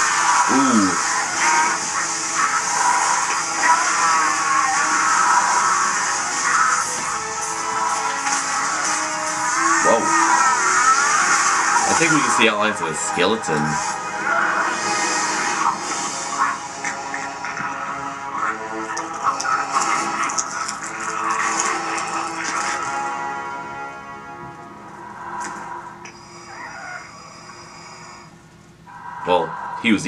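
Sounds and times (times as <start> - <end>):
crackling sound effects: 0.0 - 12.5, 13.5 - 23.3
dramatic film music: 0.0 - 30.0.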